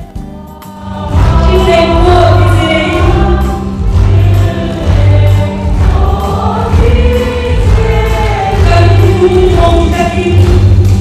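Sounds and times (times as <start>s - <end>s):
children's choir singing: 0.3s - 10.7s.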